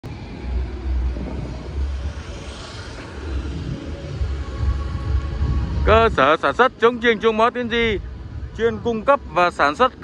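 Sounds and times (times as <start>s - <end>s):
street traffic rumble: 0.0s - 10.0s
vehicle passing by: 0.1s - 6.2s.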